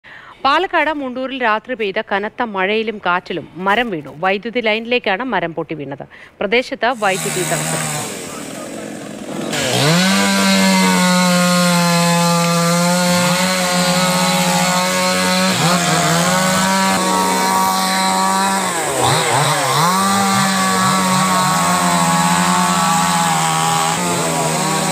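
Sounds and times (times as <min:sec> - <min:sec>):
chainsaw cutting wood: 0:07.0 - 0:24.9.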